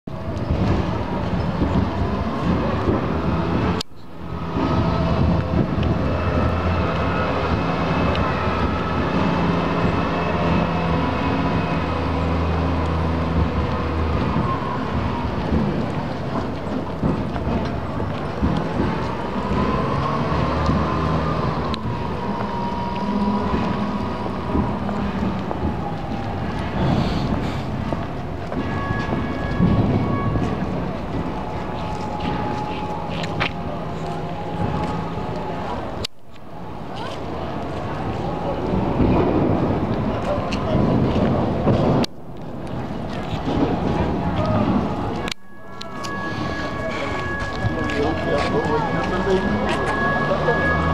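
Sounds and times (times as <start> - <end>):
low engine hum: 0.1 - 50.9
wind buffeting microphone: 0.1 - 50.9.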